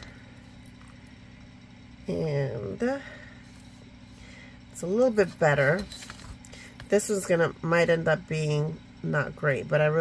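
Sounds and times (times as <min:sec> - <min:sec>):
low hum of room noise: 0:00.0 - 0:10.0.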